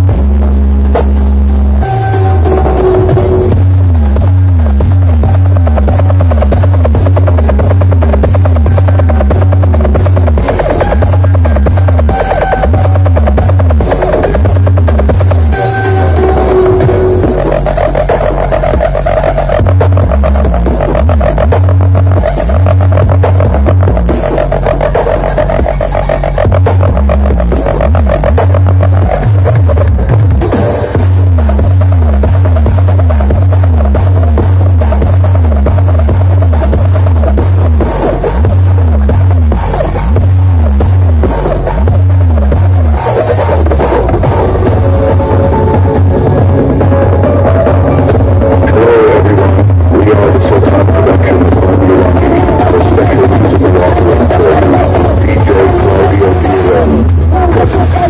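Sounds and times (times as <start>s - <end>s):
loud electronic dance music: 0.0s - 58.0s.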